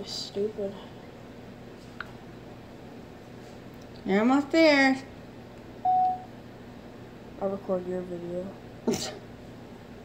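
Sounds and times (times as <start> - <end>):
short electronic beep: 5.8 - 6.3.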